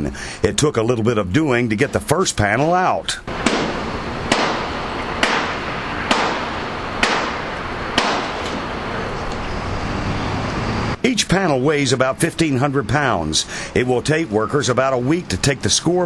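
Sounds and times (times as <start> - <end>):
low machine hum: 0.0 - 16.0
outdoor noise: 0.0 - 16.0.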